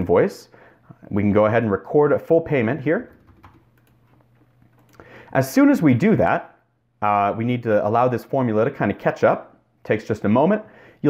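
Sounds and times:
computer keyboard keystrokes: 3.1s - 4.0s.

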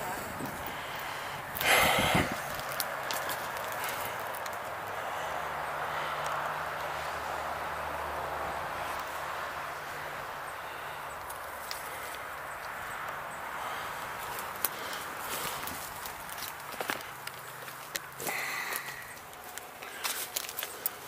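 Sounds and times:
footsteps crunching on twigs: 0.0s - 5.4s, 11.1s - 21.0s
highway traffic rushing: 0.0s - 21.0s
twigs snapping: 1.5s - 7.2s, 11.1s - 21.0s.

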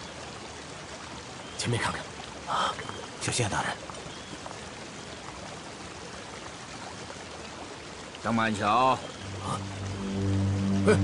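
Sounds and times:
river water rushing: 0.0s - 11.0s.

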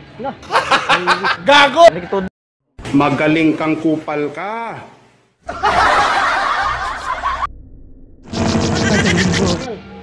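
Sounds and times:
person laughing loudly: 8.8s - 9.6s.

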